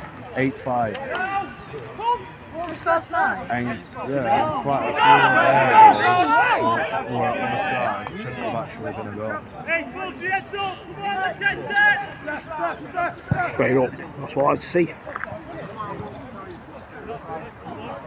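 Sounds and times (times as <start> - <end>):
men shouting and calling: 0.3 - 18.0.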